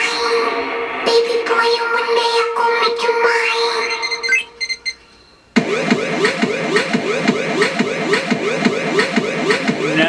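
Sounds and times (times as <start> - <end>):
synthesized pitch sweeps: 5.6 - 10.0.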